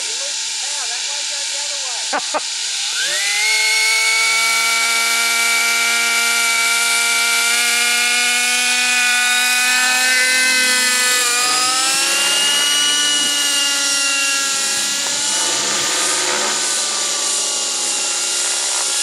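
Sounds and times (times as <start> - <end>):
model helicopter engine whine: 0.0 - 19.0.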